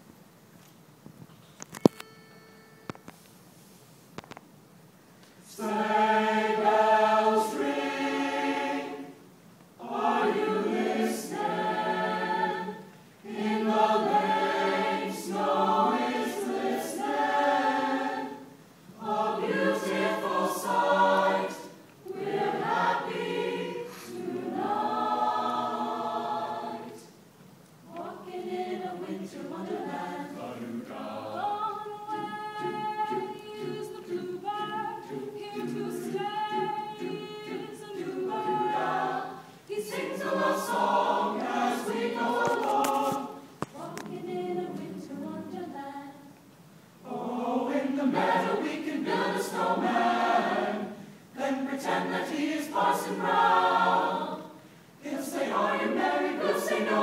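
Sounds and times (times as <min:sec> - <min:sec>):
mixed choir singing: 0:05.4 - 0:27.2, 0:27.8 - 0:46.3, 0:47.0 - 0:57.0.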